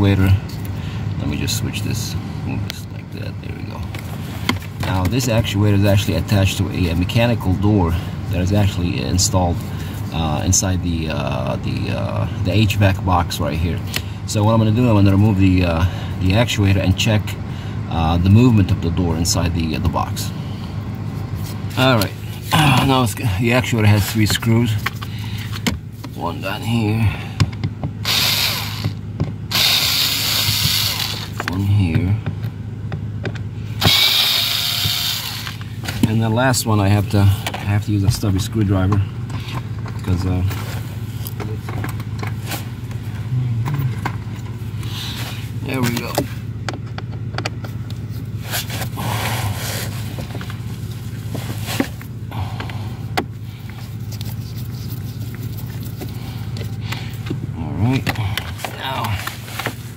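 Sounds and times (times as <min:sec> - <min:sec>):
steady low hum: 0:00.0 - 0:59.9
cordless power screwdriver running: 0:28.0 - 0:31.4, 0:33.8 - 0:35.6.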